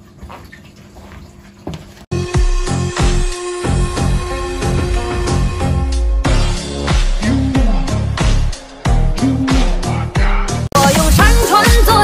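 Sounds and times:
high heel footsteps on rug: 0.2s - 2.1s.

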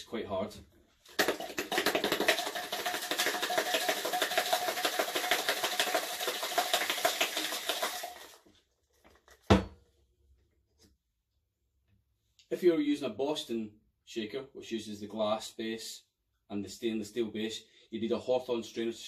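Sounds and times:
ice rattling in cocktail shaker: 1.1s - 8.4s.

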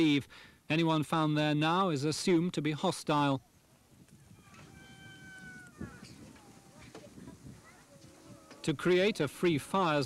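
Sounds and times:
distant high-pitched call: 4.4s - 6.2s.

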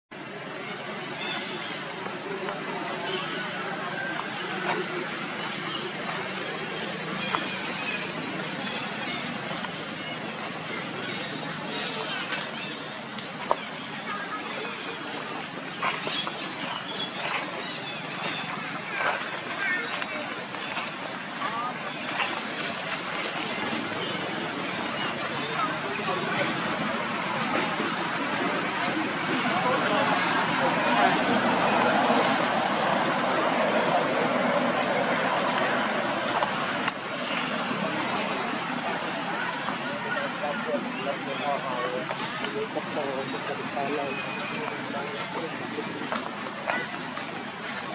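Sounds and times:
indistinct voices: 0.2s - 47.9s.

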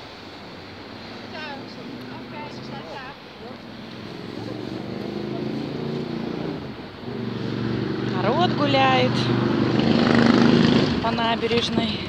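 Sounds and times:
engine drone: 0.0s - 12.0s.

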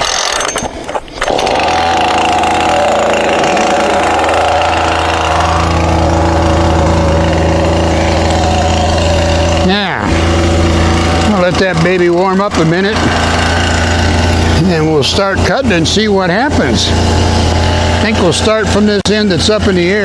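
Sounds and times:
chainsaw starting and idling: 0.0s - 19.9s.

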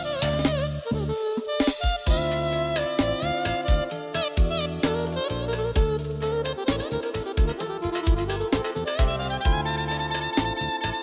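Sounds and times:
electronic keyboard music with beat: 0.0s - 11.0s.

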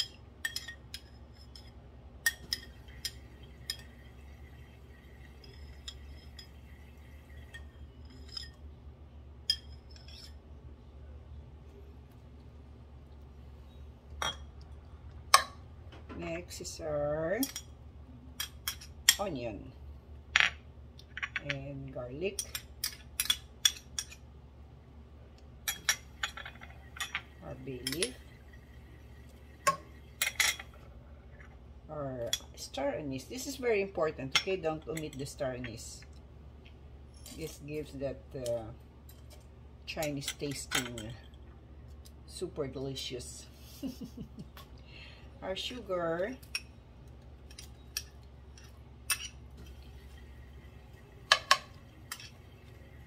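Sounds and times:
low steady hum: 0.0s - 53.0s.

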